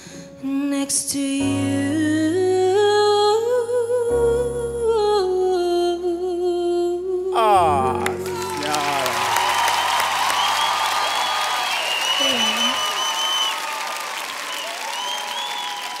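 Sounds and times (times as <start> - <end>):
music: 0.0 - 12.7
audience applauding: 8.0 - 16.0
shouts from audience: 8.2 - 16.0.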